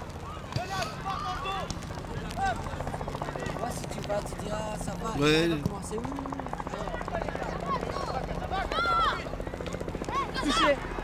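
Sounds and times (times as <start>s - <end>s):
young players shouting: 0.2s - 1.8s, 6.8s - 9.4s, 10.0s - 10.8s.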